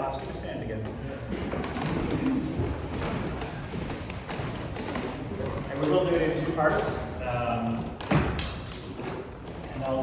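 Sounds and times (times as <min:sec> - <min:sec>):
people shuffling and rustling: 0:00.0 - 0:10.0.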